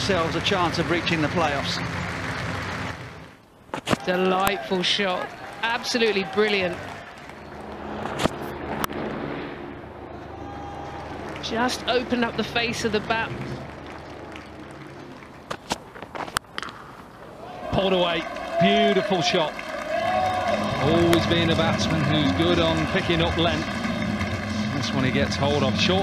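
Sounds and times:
crowd noise: 0.0 - 26.0
crowd murmur: 19.8 - 26.0.

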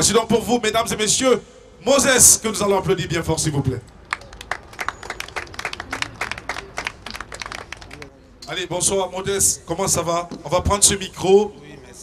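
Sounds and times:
audience applauding: 4.1 - 8.1.

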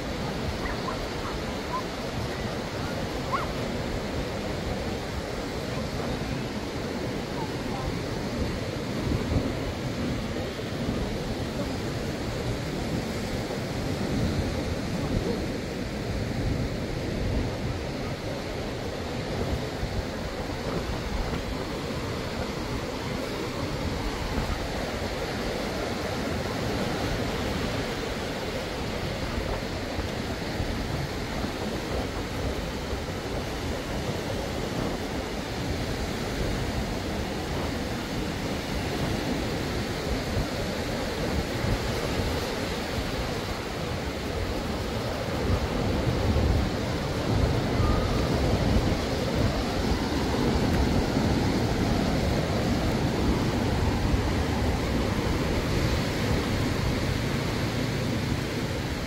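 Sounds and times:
surf washing up a beach: 0.0 - 59.0
wind rumbling on microphone: 0.0 - 59.0.

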